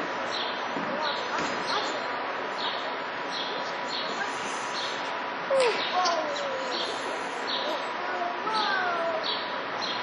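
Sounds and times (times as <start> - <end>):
steady outdoor hiss: 0.0 - 10.0
birds chirping: 0.3 - 10.0.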